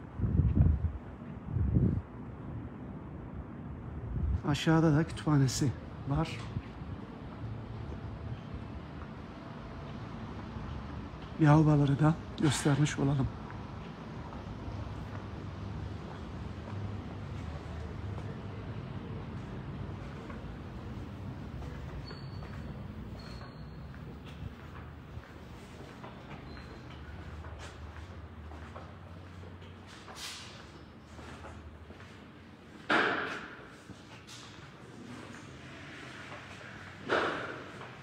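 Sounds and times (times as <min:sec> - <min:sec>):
wind buffeting microphone: 0:00.0 - 0:02.1.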